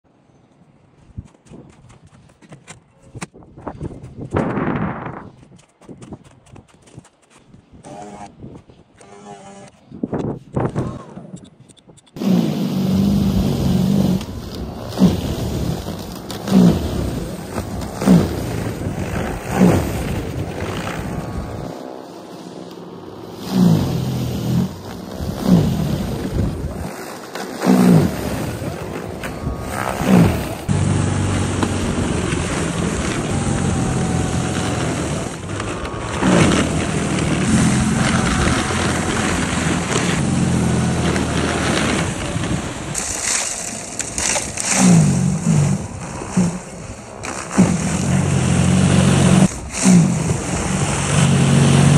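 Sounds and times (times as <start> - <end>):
snow blower whirring: 7.8 - 8.3, 12.2 - 51.9.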